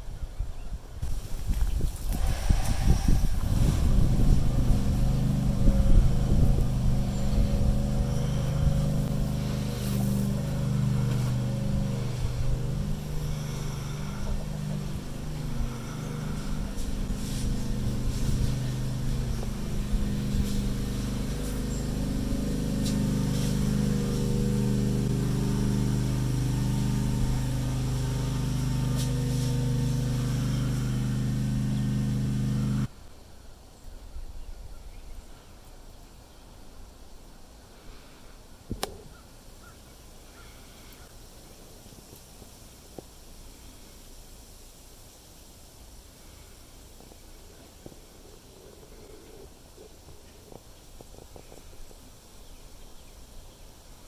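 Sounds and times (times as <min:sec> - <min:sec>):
vehicle engine idling: 0:02.2 - 0:32.9.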